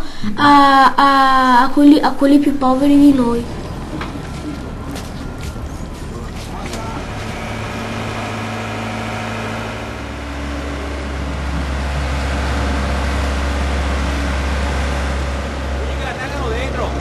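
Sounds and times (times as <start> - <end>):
boat engine humming: 2.5 - 17.0.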